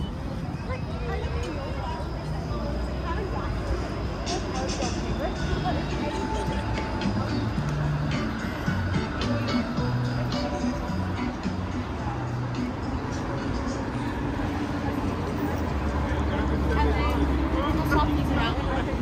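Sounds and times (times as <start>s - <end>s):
passers-by talking: 0.0s - 19.0s
traffic: 0.0s - 19.0s
music playing: 4.0s - 19.0s.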